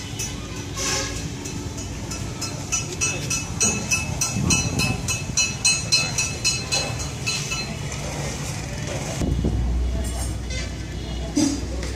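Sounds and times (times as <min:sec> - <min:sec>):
motor vehicle rumble: 0:00.0 - 0:11.9.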